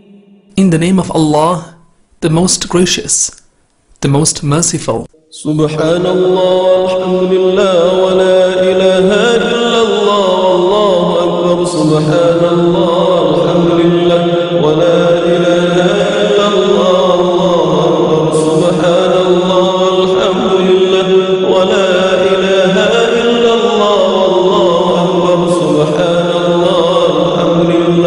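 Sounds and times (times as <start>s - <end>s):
low held drone: 0.0s - 0.5s.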